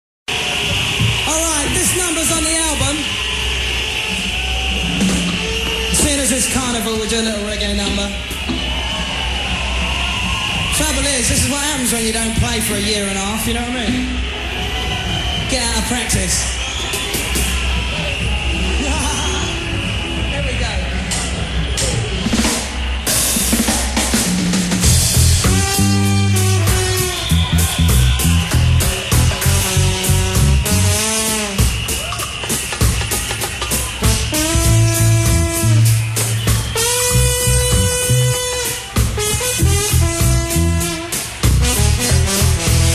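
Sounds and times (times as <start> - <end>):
band instruments scattered notes: 0.3 - 42.9
steady bass line: 23.6 - 32.2, 33.8 - 42.9.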